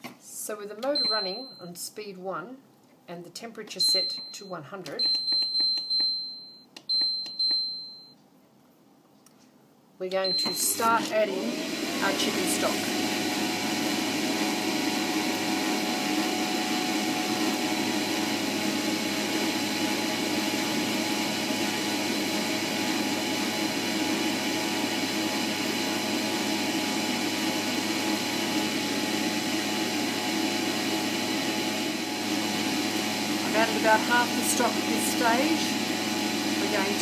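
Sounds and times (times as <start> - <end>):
cooker motor humming: 10.4 - 37.0.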